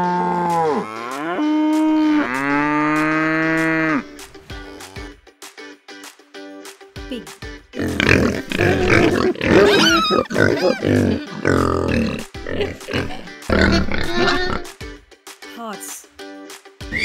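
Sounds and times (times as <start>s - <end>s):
pigs grunting and squealing: 0.0s - 5.1s, 7.8s - 14.7s
light background music: 0.0s - 17.0s.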